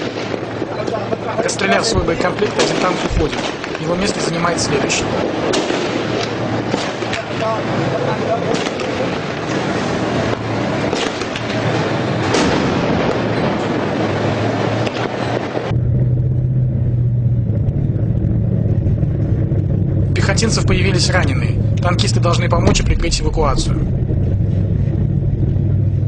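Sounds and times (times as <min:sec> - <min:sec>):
low engine drone: 0:00.0 - 0:26.0
sharp clatter: 0:00.0 - 0:26.0
tank engine rumble: 0:00.0 - 0:26.0.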